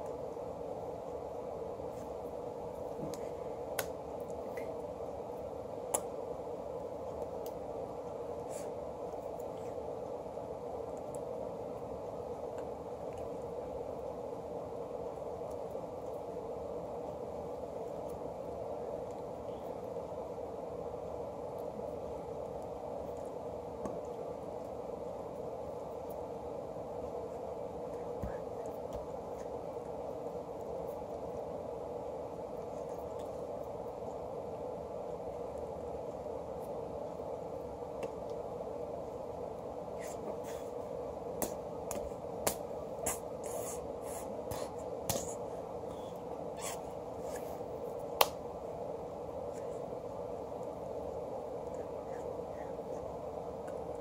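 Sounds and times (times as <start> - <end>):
low room hum: 0.0 - 54.0.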